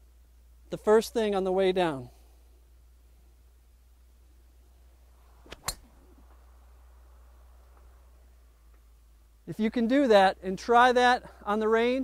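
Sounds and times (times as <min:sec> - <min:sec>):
faint downswing tick: 0:05.4 - 0:06.4, 0:08.7 - 0:08.9
golf club striking ball: 0:05.4 - 0:06.4.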